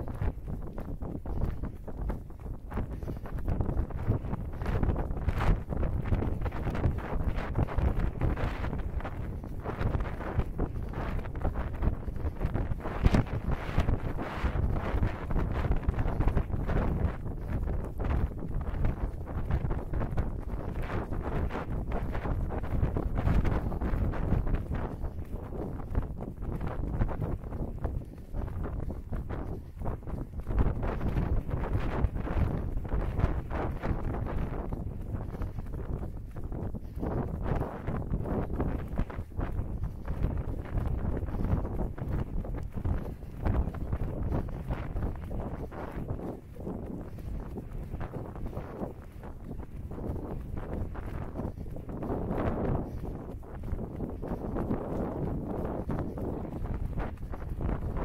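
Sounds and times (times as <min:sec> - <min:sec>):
footfalls on tarmac: 0:00.0 - 0:58.0
wind buffeting microphone: 0:00.0 - 0:58.0.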